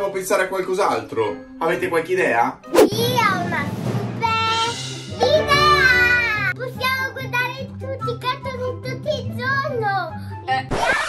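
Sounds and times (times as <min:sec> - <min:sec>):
background music: 0:00.0 - 0:10.7
girl's high-pitched excited cry: 0:05.6 - 0:06.6.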